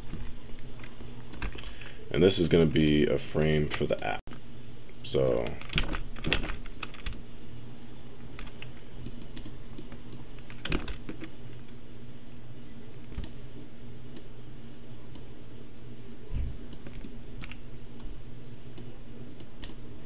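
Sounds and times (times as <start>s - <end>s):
computer keyboard and mouse clicks: 0.0s - 1.7s, 5.2s - 7.2s, 8.4s - 11.3s, 13.1s - 13.4s, 16.7s - 18.1s, 18.8s - 19.8s
low background hum: 0.0s - 20.0s.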